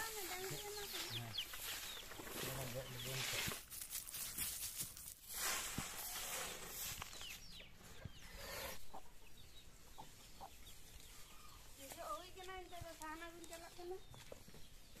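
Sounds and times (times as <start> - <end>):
chickens clucking: 0.0 - 3.5, 7.2 - 12.9
broom sweeping dirt: 0.0 - 8.8.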